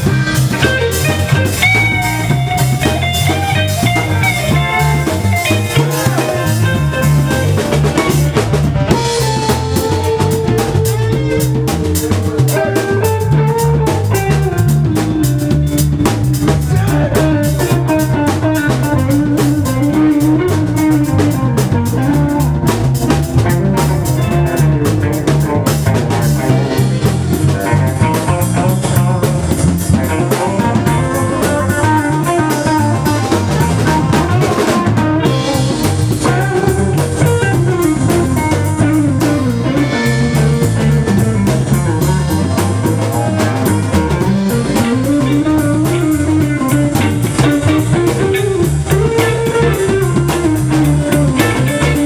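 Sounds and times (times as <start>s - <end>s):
bass guitar: 0.0s - 52.0s
drum kit: 0.0s - 52.0s
electric guitars: 0.0s - 52.0s.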